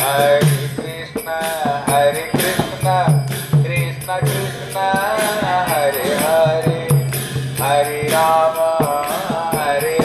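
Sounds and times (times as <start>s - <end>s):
devotional chanting: 0.0s - 10.0s
hand cymbals jingling: 0.0s - 10.0s
percussion strikes: 0.0s - 10.0s.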